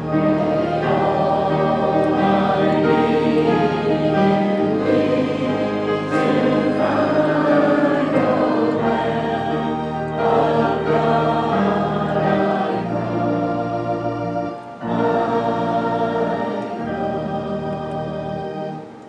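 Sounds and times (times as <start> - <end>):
congregation singing a hymn: 0.0 - 19.0
organ playing held chords: 0.0 - 19.0.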